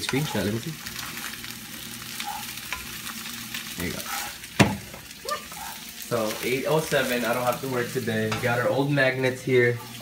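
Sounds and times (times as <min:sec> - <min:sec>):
eggs sizzling in a pan: 0:00.0 - 0:10.0.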